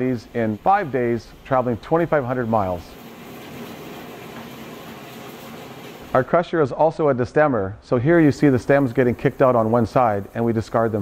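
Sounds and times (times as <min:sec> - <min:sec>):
grape crusher machine running: 0:00.0 - 0:06.2.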